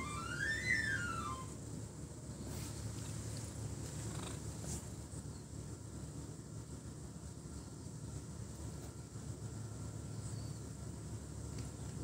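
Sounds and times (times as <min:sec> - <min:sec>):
cat purring: 0:03.8 - 0:04.8.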